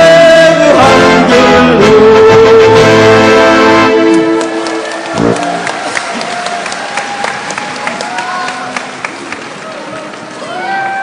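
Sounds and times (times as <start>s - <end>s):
crowd applauding: 4.0s - 11.0s.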